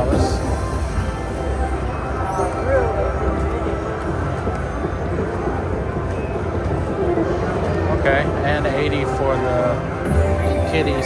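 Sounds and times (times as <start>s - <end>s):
slot machine music: 0.0s - 4.3s, 9.4s - 11.0s.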